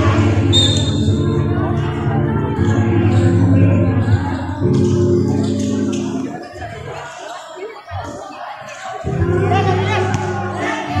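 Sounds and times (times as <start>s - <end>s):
voices in echoing hall: 0.0s - 11.0s.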